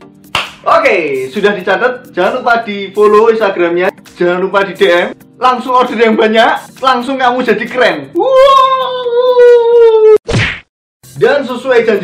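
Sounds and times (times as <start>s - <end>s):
man saying wow: 8.1s - 10.2s.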